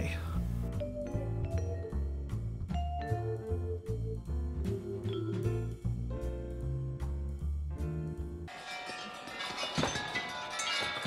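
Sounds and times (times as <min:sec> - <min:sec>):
tubular bells ringing: 0:08.5 - 0:11.0.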